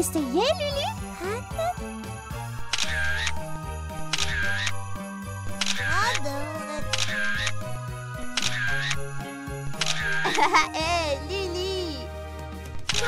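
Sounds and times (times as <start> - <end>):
light background music: 0.0 - 13.0
camera shutter clicking: 2.7 - 3.0, 4.1 - 4.7, 5.5 - 5.9, 6.8 - 7.5, 8.4 - 8.9, 9.7 - 10.3.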